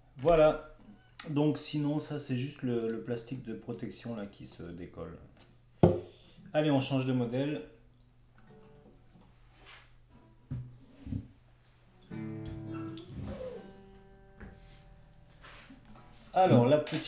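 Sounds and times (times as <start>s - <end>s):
knocks on guitar bodies: 5.8s - 6.1s, 10.5s - 11.3s
guitar strings ringing: 12.0s - 15.4s.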